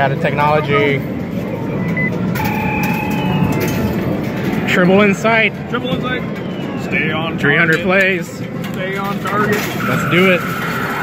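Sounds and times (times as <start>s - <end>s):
arcade din: 1.9s - 4.7s, 9.0s - 11.0s
short electronic beep: 2.0s - 3.9s, 9.8s - 11.0s.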